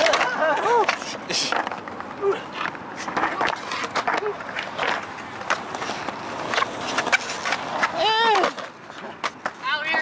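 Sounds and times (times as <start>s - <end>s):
man laughing: 0.0s - 1.6s
skateboard clacks: 0.0s - 10.0s
skateboard wheels rolling on concrete: 0.0s - 10.0s.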